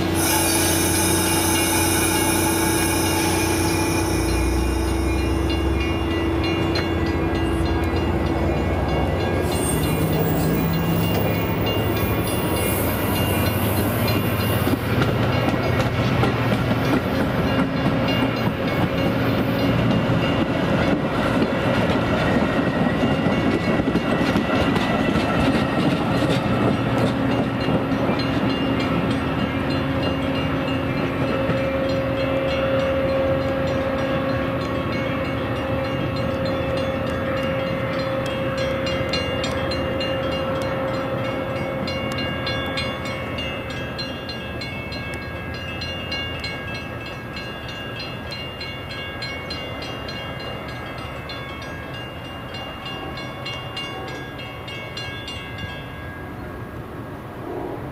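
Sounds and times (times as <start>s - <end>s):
steady pitched tone: 0.0s - 12.6s
train rumbling on rails: 0.0s - 57.9s.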